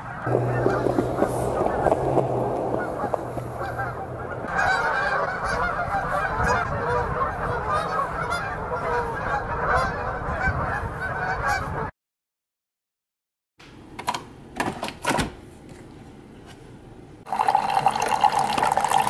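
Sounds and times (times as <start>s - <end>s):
geese honking: 0.0s - 11.9s.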